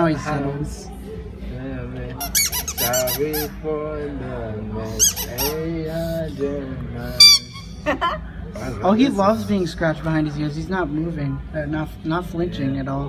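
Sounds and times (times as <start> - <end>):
rubber squeak toy squeaking: 2.2 - 3.5, 5.0 - 5.7, 7.2 - 7.8.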